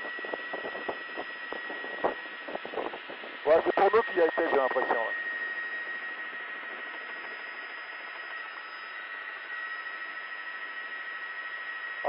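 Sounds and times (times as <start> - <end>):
faint high whine: 0.0 - 12.0
muffled helicopter cabin noise: 0.0 - 12.0
intercom hiss: 3.4 - 5.2.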